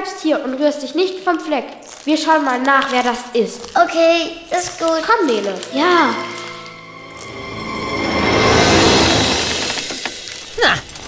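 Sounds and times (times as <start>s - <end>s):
rushing whoosh: 6.2s - 10.0s.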